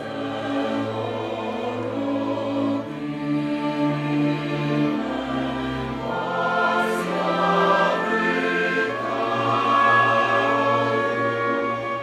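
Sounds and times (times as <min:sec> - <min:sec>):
mixed choir singing: 0:00.0 - 0:12.0.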